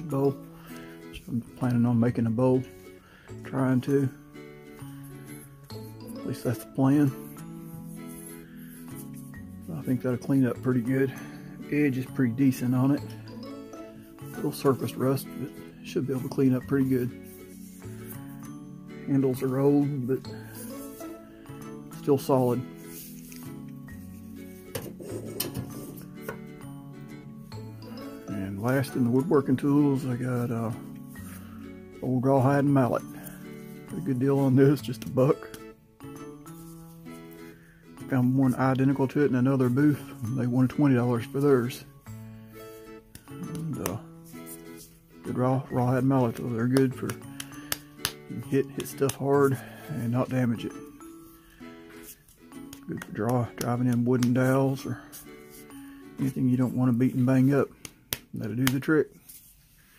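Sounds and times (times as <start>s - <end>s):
background music with bass: 0.0s - 57.8s.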